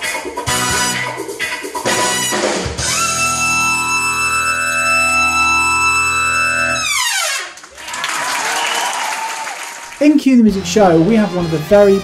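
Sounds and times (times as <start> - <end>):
audience applause: 7.5 - 10.2
brass section holding chord: 10.4 - 12.0.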